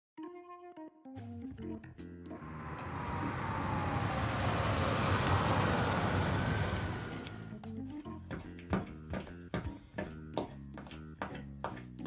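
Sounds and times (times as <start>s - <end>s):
car driving past: 2.3s - 7.6s
whine sliding down in pitch: 2.3s - 7.6s.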